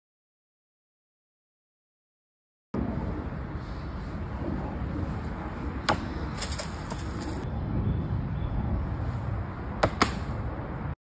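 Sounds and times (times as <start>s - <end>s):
wind rumble on microphone: 2.8s - 11.0s.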